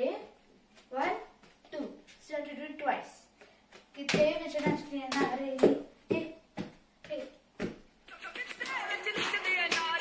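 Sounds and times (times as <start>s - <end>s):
girl's wordless voice: 0.0s - 7.5s
rhythmic hand claps: 8.1s - 10.0s.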